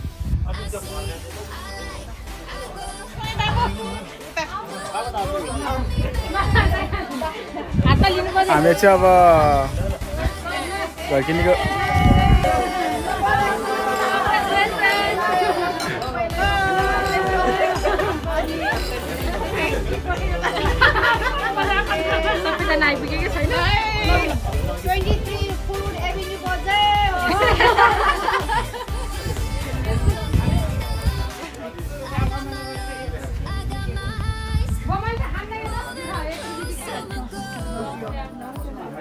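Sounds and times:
background music with steady beat: 0:00.0 - 0:39.0
people chatting: 0:00.5 - 0:39.0.

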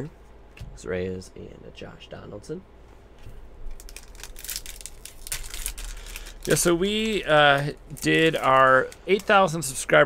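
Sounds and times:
wrapper crinkling and rustling: 0:03.7 - 0:10.0.

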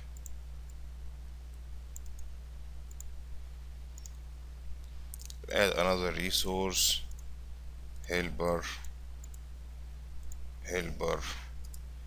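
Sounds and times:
steady low hum: 0:00.0 - 0:12.0
computer mouse clicks: 0:00.2 - 0:00.8, 0:01.9 - 0:02.3, 0:02.9 - 0:03.1, 0:04.0 - 0:04.2, 0:05.1 - 0:05.4, 0:08.8 - 0:09.4, 0:11.6 - 0:11.8.

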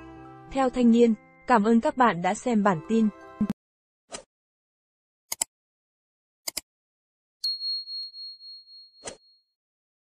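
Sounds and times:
bell ding: 0:07.4 - 0:09.5.

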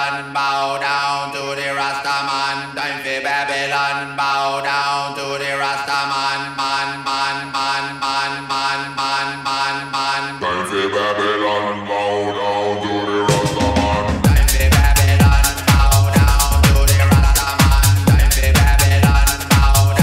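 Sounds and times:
chanted vocal melody: 0:00.0 - 0:20.0
electronic dance music: 0:00.0 - 0:20.0
held bass drone: 0:10.4 - 0:20.0
steady kick beat: 0:13.3 - 0:20.0.

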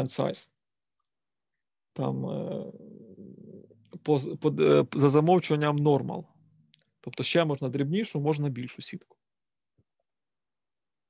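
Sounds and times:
man speaking: 0:02.0 - 0:03.2, 0:03.8 - 0:06.3, 0:07.0 - 0:09.1.

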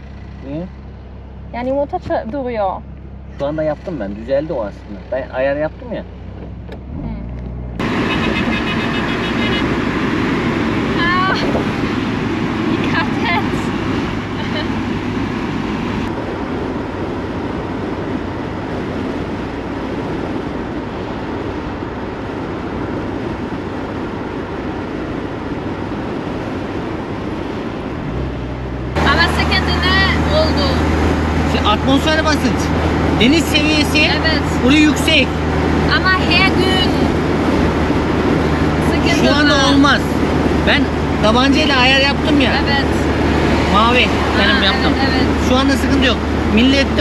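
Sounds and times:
car engine hum: 0:00.0 - 0:47.0
road noise: 0:00.0 - 0:47.0
wind rushing: 0:09.6 - 0:31.5.

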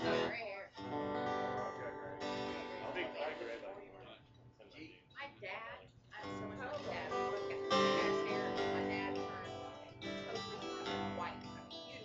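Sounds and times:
acoustic guitars strumming chords: 0:00.0 - 0:04.2, 0:06.2 - 0:12.0.

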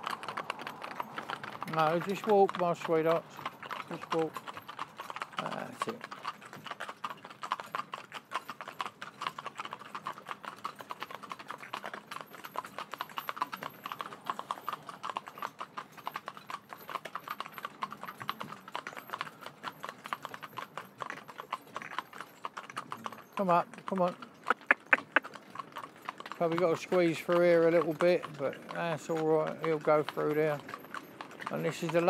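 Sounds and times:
hooves clip-clopping on tarmac: 0:00.0 - 0:32.0.

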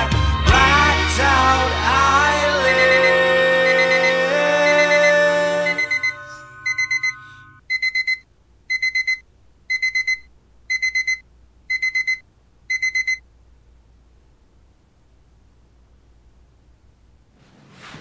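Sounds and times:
song playing: 0:00.0 - 0:07.4
electronic alarm beeping: 0:02.7 - 0:13.2.

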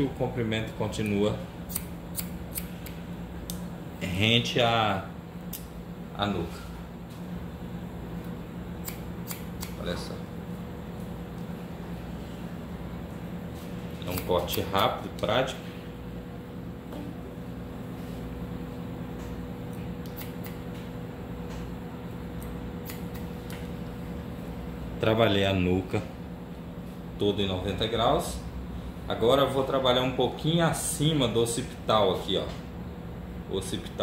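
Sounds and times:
steady low hum: 0:00.0 - 0:34.0
scissors snip: 0:01.0 - 0:03.6, 0:08.8 - 0:09.9, 0:14.0 - 0:15.0, 0:19.8 - 0:20.6, 0:22.4 - 0:23.6.

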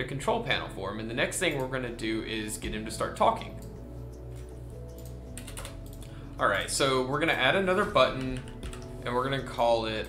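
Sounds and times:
quiet background music: 0:00.0 - 0:10.0
computer keyboard and mouse clicks: 0:04.4 - 0:06.2, 0:08.0 - 0:08.9.

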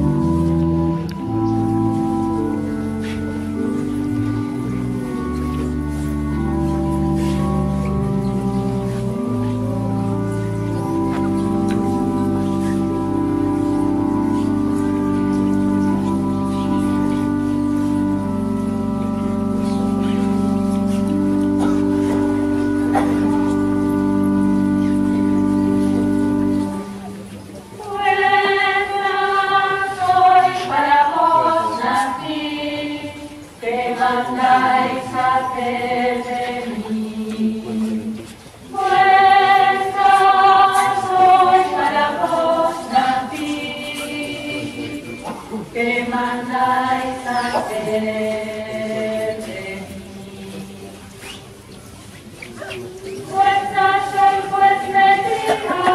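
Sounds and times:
organ playing sustained chords: 0:00.0 - 0:51.1, 0:53.0 - 0:55.9
choir singing a hymn: 0:27.8 - 0:51.2, 0:53.1 - 0:55.9.

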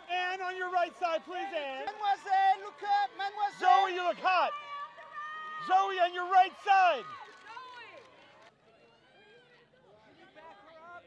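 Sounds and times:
background hubbub: 0:00.0 - 0:11.0.

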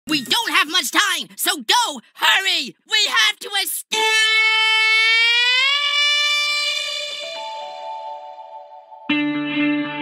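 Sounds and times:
cartoon character screaming: 0:03.9 - 0:07.4.

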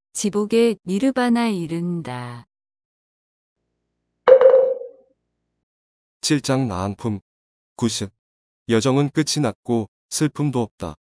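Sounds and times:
struck chime tone: 0:04.3 - 0:04.9.

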